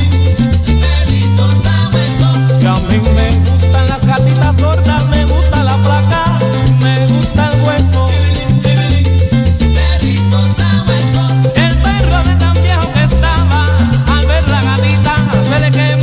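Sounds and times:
salsa band music: 0.0 - 16.0.

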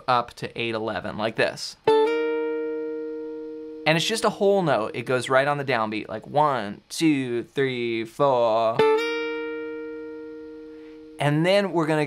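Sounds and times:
clean electric guitar dyad: 1.7 - 5.4, 8.6 - 12.0.

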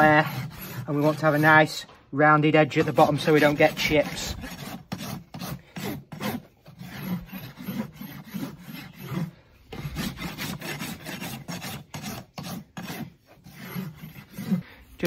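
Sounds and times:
rasp filing hoof: 0.0 - 1.9, 2.6 - 15.0.

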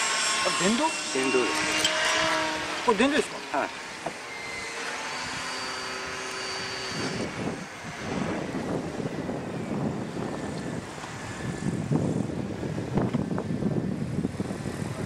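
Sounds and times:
model helicopter motor whine: 0.0 - 15.0.

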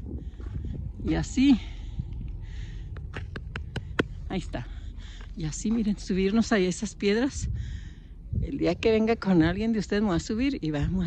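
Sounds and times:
low rumble: 0.0 - 11.0
hand rubbing and tapping stone: 2.9 - 4.2.

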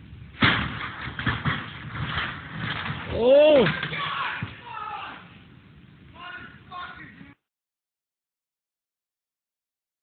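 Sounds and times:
thumps: 0.3 - 4.6.

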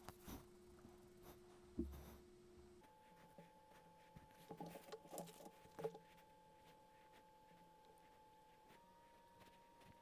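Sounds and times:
steady electrical hum: 0.0 - 10.0.

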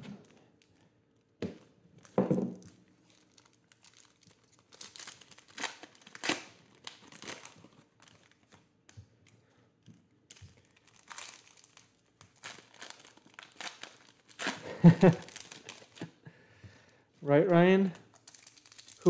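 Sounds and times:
foil wrapper tearing and crinkling: 2.0 - 8.6, 10.3 - 16.1, 18.1 - 19.0.

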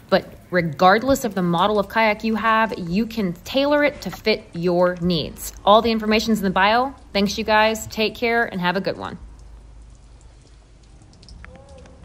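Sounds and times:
light ticks: 9.3 - 12.0.

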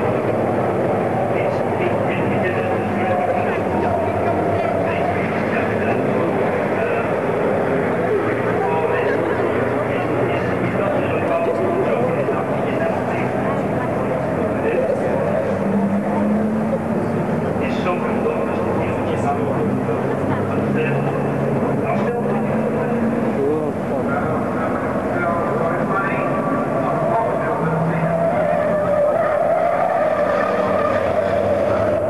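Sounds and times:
diesel truck engine passing: 0.0 - 32.0
track noise: 0.0 - 32.0.

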